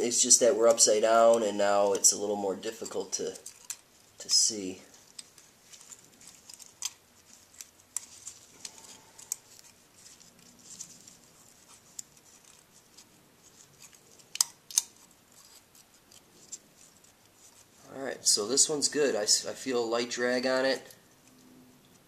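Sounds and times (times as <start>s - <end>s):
small metal clicks: 2.7s - 3.9s, 4.9s - 17.6s.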